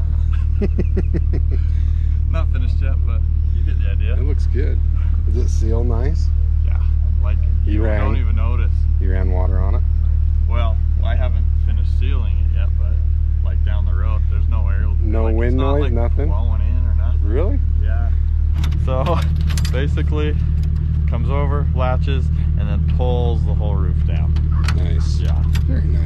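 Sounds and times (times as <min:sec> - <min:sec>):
vehicle engine idling: 0:00.0 - 0:26.0
man talking: 0:00.3 - 0:09.9, 0:10.5 - 0:18.2, 0:18.8 - 0:20.4, 0:21.1 - 0:26.0.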